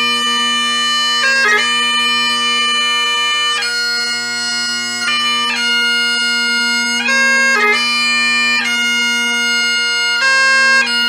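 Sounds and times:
bagpipe playing: 0.0 - 11.0.

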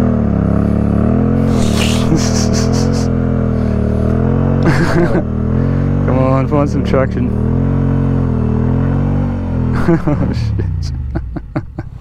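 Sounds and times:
motorcycle engine idling: 0.0 - 12.0
short rush of hissing: 1.4 - 3.1.

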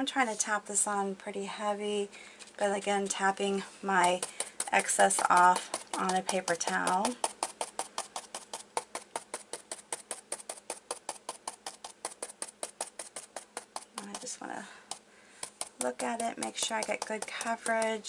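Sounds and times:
stencil brush tapping on fabric: 4.0 - 18.0.

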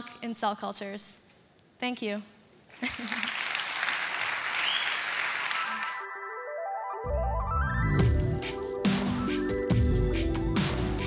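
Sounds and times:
audience applauding: 2.8 - 6.1.

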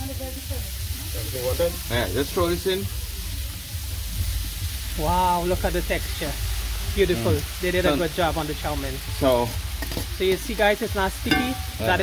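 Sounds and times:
vegetables sizzling in a wok: 0.0 - 12.0.

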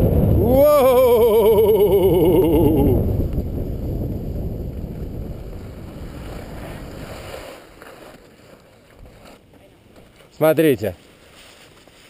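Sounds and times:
wind on microphone: 0.0 - 7.6
skis sliding on snow: 4.0 - 12.0.

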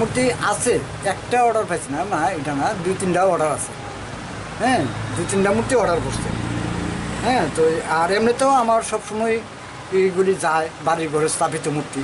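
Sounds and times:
man speaking: 0.0 - 3.8, 4.6 - 6.4, 7.2 - 12.0.

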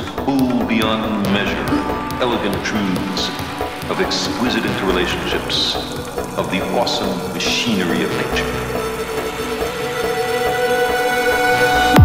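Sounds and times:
dense noisy texture: 0.0 - 12.0
synth drone: 0.0 - 12.0.

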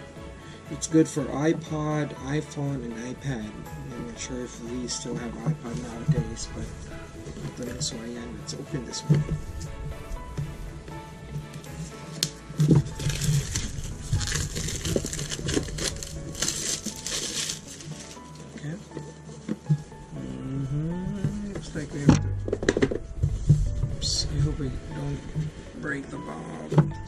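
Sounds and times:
background music: 0.0 - 27.0
cardboard packaging rustling: 4.0 - 20.2.

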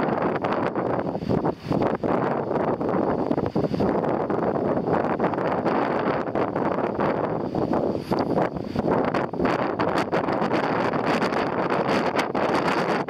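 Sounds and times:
strong wind buffeting microphone: 0.0 - 13.0.

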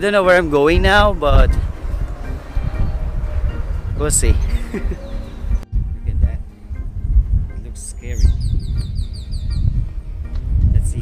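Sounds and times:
small bird trilling: 4.4 - 5.6, 8.0 - 9.8.

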